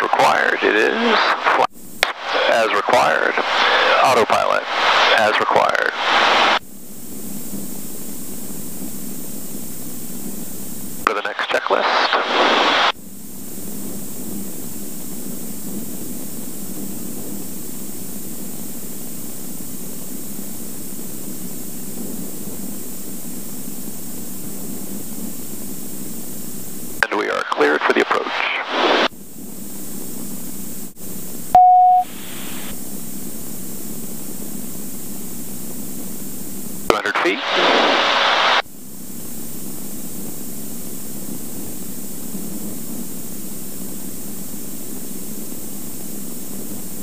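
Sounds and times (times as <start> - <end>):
intercom hiss: 0.0 - 6.6, 11.1 - 12.9, 27.0 - 29.1, 31.6 - 32.8, 36.9 - 38.6
radio voice: 0.0 - 6.6, 11.1 - 12.9, 27.0 - 29.1, 36.9 - 38.6
short beep: 31.6 - 32.2.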